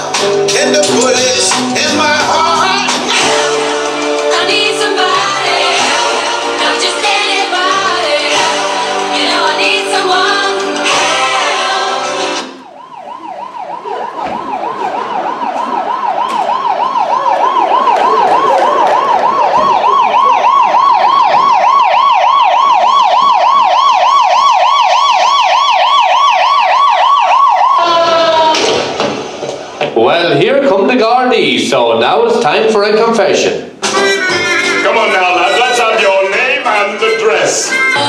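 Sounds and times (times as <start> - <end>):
emergency siren yelping: 1.2 - 29.9.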